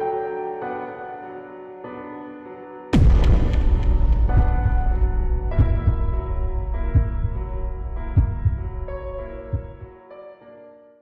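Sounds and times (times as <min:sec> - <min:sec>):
low heartbeat-like thumps: 0:03.0 - 0:09.9.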